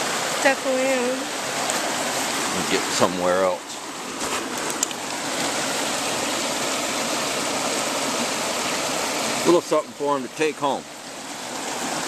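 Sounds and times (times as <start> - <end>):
water rushing over rocks: 0.0 - 12.0.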